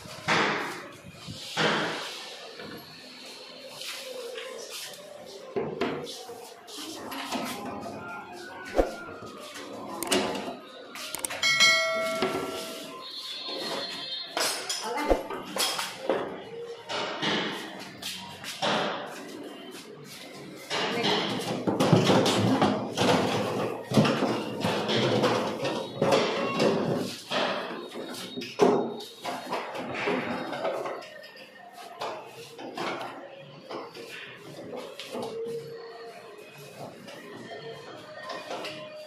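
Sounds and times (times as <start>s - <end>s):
people talking: 0.1s - 25.2s.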